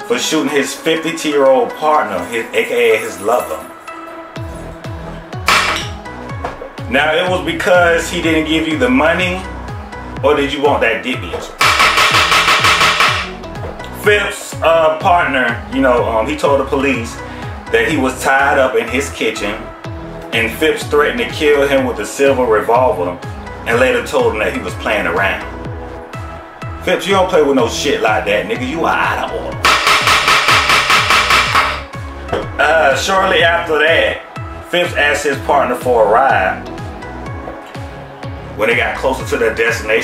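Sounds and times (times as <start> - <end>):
background music with falling bass: 0.8 - 40.0
wooden gavel banging: 5.5 - 6.6, 11.4 - 13.4, 29.6 - 32.6.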